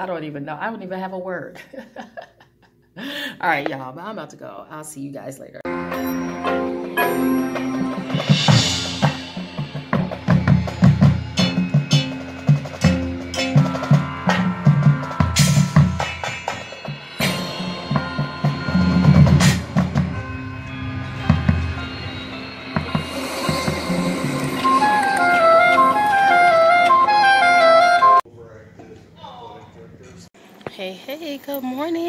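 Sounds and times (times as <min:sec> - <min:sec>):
loud cymbal crashes: 0:05.7 - 0:25.6
low pitched drum notes: 0:05.7 - 0:27.8
marching band percussion: 0:05.9 - 0:28.2.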